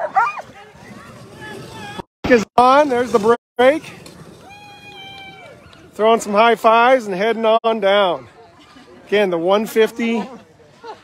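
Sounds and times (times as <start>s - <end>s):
sled dog whining: 0.0s - 2.1s, 4.3s - 6.0s.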